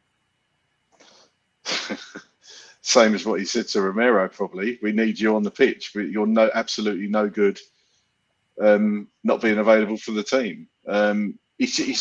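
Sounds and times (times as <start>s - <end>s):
faint breath: 1.0s - 1.4s, 2.4s - 2.8s, 7.7s - 8.2s
man laughing: 1.7s - 2.2s.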